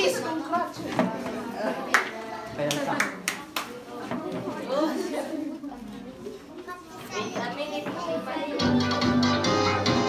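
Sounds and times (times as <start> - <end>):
audience chatter: 0.0 - 10.0.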